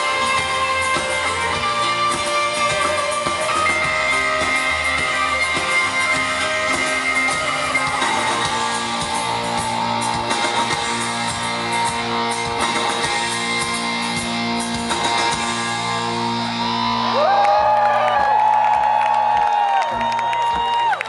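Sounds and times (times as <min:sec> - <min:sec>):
live rock band playing: 0:00.0 - 0:18.0.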